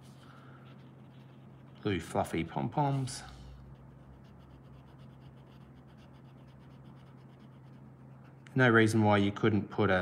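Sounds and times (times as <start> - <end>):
marker scratching on paper: 0.0 - 8.6
low steady hum: 0.0 - 10.0.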